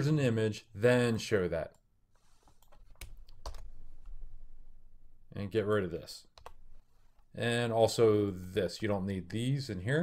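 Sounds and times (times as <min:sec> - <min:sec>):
computer keyboard keystrokes: 0:02.6 - 0:03.7, 0:06.4 - 0:06.6.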